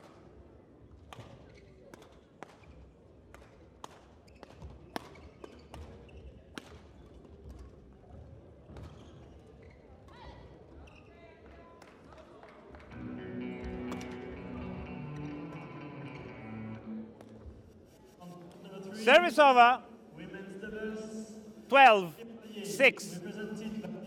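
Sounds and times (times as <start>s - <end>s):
music: 12.9s - 17.2s.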